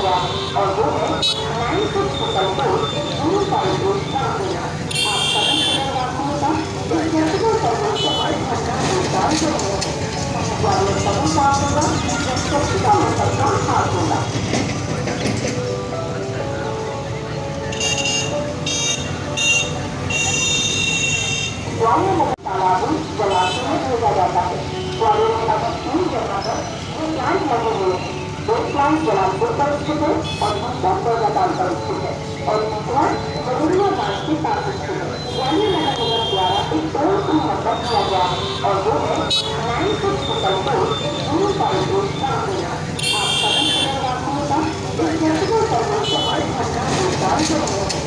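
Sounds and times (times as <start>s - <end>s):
voice over loudspeaker: 0.0s - 14.7s, 21.6s - 48.0s
street traffic: 0.0s - 48.0s
vehicle horn toot: 1.2s - 1.5s, 4.9s - 5.9s, 8.0s - 8.4s, 17.8s - 21.6s, 39.3s - 39.6s, 43.0s - 44.0s.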